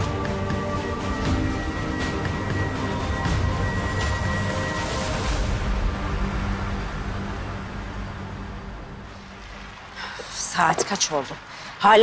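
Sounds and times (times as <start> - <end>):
dramatic background score: 0.0 - 12.0.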